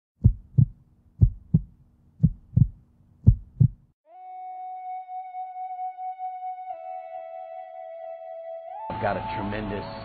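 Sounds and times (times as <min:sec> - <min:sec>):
heartbeat thumps: 0:00.2 - 0:03.9.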